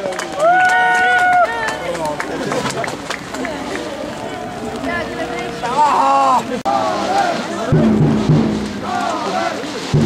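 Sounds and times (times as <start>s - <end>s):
loud long held shout: 0.3s - 1.9s, 5.6s - 7.7s, 8.8s - 9.7s.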